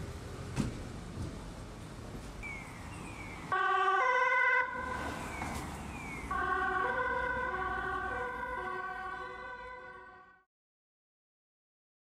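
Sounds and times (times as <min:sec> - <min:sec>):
two-tone emergency siren: 0:03.5 - 0:10.5.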